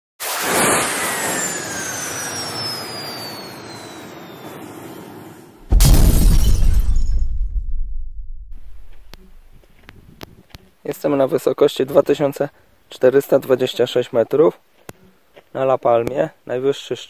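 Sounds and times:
noisy whoosh with falling whistle: 0.2 - 5.6
deep boom hit: 5.6 - 9.6.

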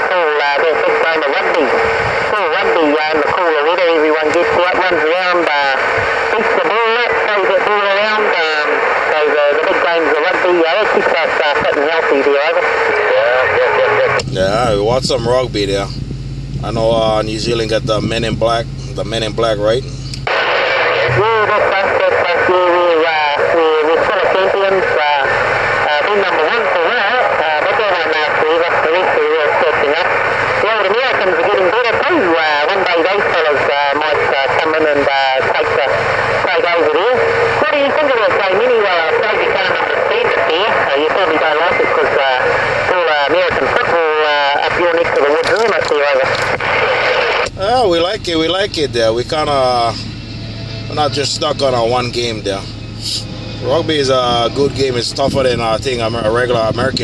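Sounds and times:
garbled voice over radio speaker: 0.0 - 16.0, 16.6 - 50.0, 50.9 - 57.0
radio static hiss: 0.0 - 57.0.

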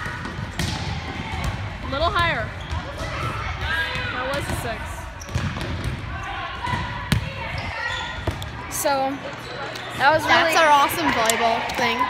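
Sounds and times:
volleyball smacks and bounces: 0.0 - 7.6
players chattering: 0.0 - 12.0.

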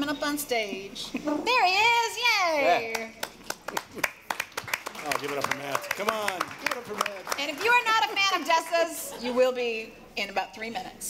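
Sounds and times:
scattered hand claps: 2.9 - 8.1.

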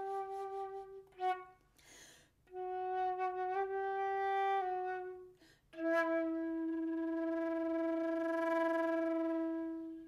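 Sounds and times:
solo flute notes: 0.0 - 10.0.

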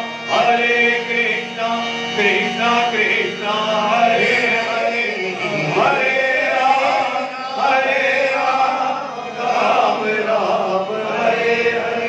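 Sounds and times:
musical accompaniment: 0.0 - 12.0
voices singing a chant: 0.0 - 12.0.

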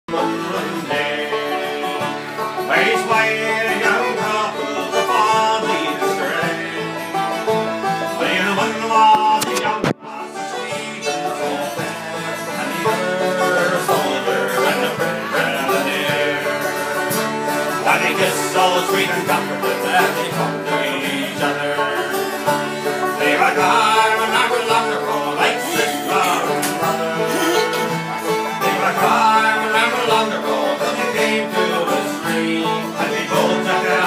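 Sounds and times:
acoustic guitar: 0.1 - 34.0
fiddle: 0.1 - 34.0.

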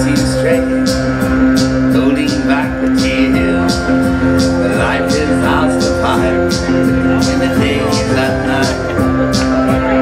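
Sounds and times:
synth-pop band playing loudly: 0.0 - 10.0.

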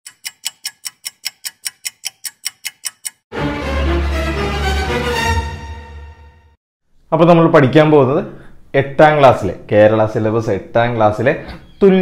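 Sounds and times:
rapid sharp ticks: 0.0 - 3.2.

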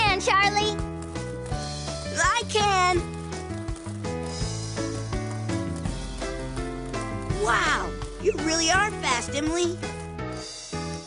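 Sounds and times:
upbeat cartoon music: 0.0 - 11.0.

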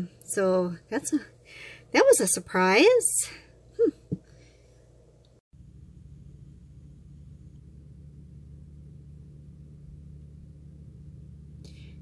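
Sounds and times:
low outdoor rumble: 0.0 - 12.0
thin high whine: 5.6 - 11.8.

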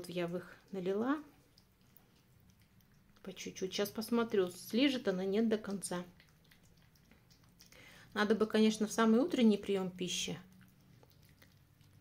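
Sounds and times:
cat licking and eating: 0.0 - 12.0.

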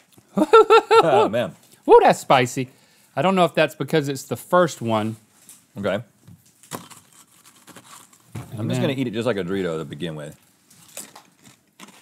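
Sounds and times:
chips crinkling and rustling: 6.5 - 8.3, 10.7 - 12.0.

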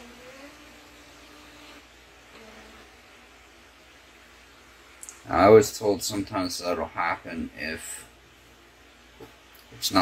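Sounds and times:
label printer motor whine: 0.0 - 3.3.

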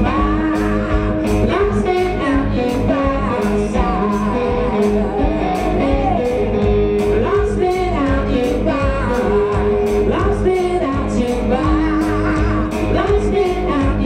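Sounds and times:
drums and cymbal beat: 0.0 - 14.0
electric guitar: 0.0 - 14.0
man singing: 0.0 - 14.0.

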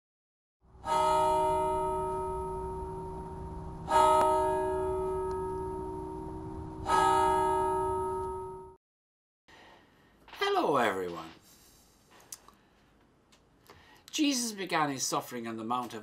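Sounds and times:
deep bell ringing: 0.8 - 8.8.

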